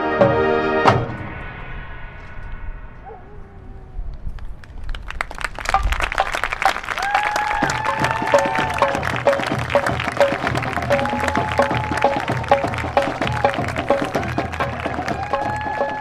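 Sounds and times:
marching band playing: 0.0s - 1.4s, 5.8s - 16.0s
crowd applauding: 4.4s - 16.0s.

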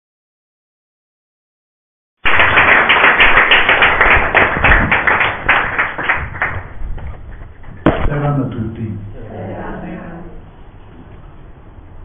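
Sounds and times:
audience applauding: 2.2s - 6.8s.

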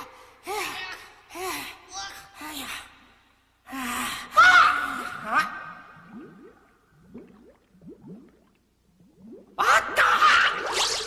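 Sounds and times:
cartoon bubbling blips: 6.0s - 11.0s.

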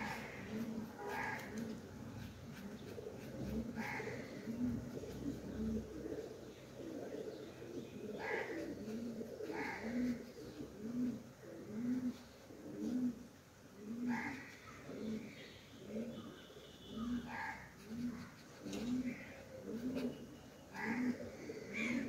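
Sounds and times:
pigeon cooing: 0.0s - 22.0s.

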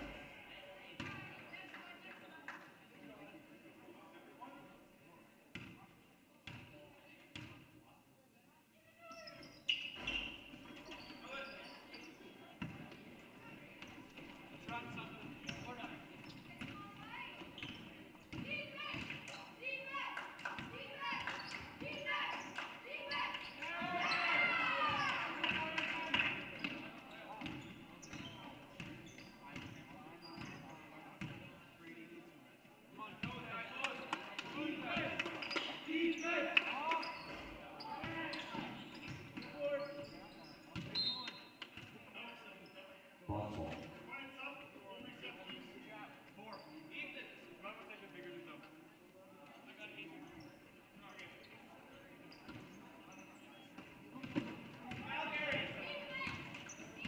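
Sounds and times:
sneakers squeaking: 9.0s - 19.6s, 21.0s - 25.2s, 26.6s - 31.4s, 35.0s - 41.9s, 50.2s - 55.0s, 56.1s - 57.0s
people calling out in echoing gym: 18.4s - 25.5s, 55.0s - 56.8s.

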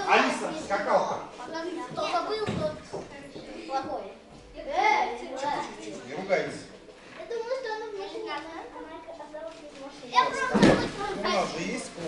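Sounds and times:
children's voices: 1.4s - 5.9s, 7.0s - 11.9s
heavy thump onto crash mats: 10.5s - 11.0s.

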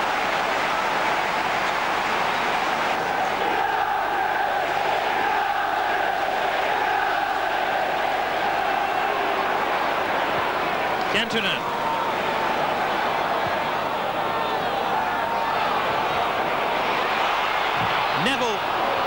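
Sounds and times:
stadium crowd chanting: 0.0s - 19.0s.

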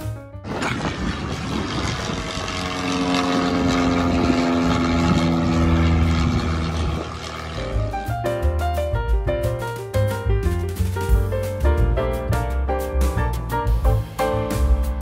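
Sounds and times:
aircraft engines roaring overhead: 0.0s - 8.4s
background music: 7.4s - 15.0s.

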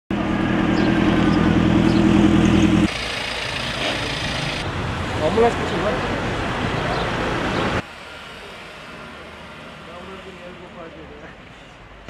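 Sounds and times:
outdoor background noise: 0.1s - 12.0s.

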